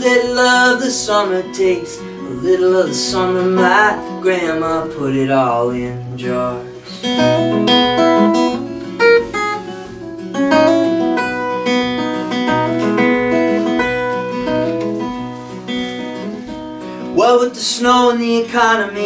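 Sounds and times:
fingerstyle acoustic guitar: 0.0s - 19.0s.

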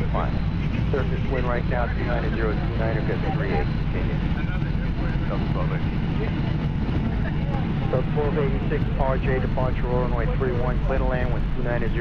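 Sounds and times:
airplane cabin rumble: 0.0s - 12.0s.

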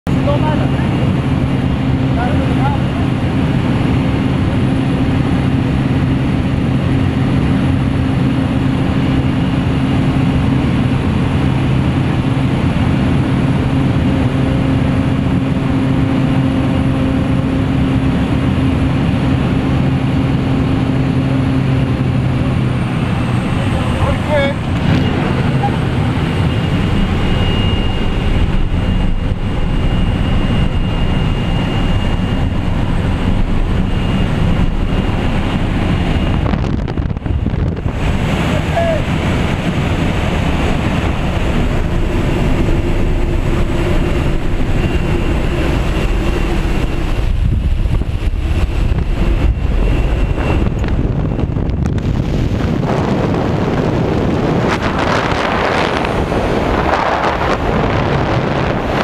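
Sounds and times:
aircraft engine and propeller droning: 0.0s - 59.0s
wind noise rushing: 0.8s - 59.0s.

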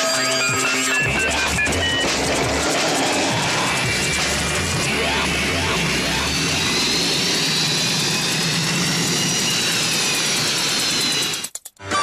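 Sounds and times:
jet engine whine: 0.0s - 11.5s.

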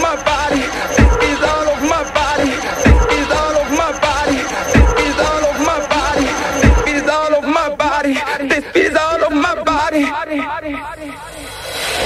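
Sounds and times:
repeating pitched vocal sample: 0.0s - 12.0s
rising noise sweep: 10.6s - 12.0s.

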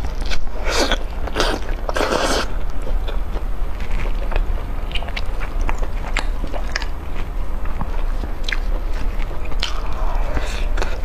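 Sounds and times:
chewing and biting meat: 0.0s - 11.0s.

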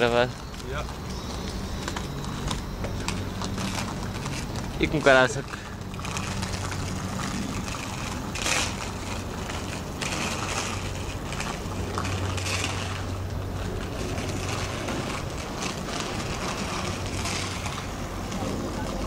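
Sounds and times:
inline skate wheels rolling on asphalt: 0.0s - 19.0s.

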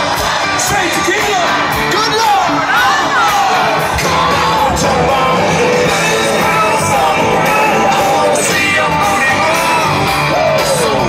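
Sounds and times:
crowd shouting and whooping: 0.0s - 11.0s
live country band through pa: 0.0s - 11.0s.

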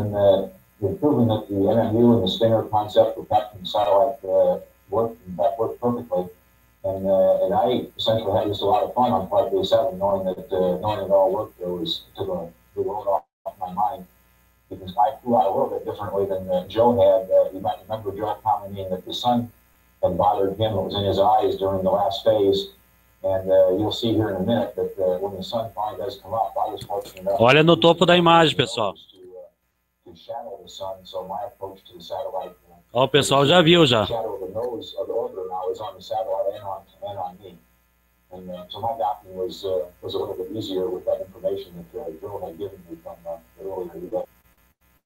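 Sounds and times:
buzzing electrical hum: 0.0s - 17.1s
steady hum: 26.4s - 29.0s
man speaking over radio link: 26.8s - 29.0s, 33.0s - 34.2s.

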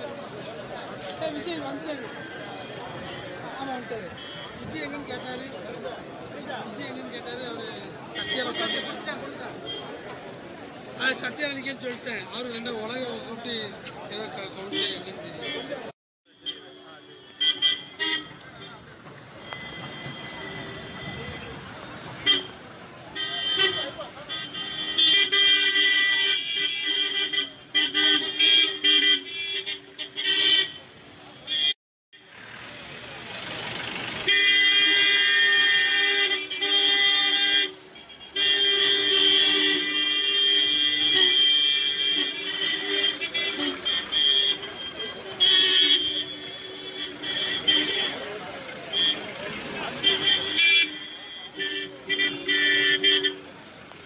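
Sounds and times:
crowd voices: 0.0s - 31.7s, 37.7s - 54.0s
vehicle horns tooting: 1.2s - 10.1s, 10.8s - 32.3s, 34.2s - 54.0s.

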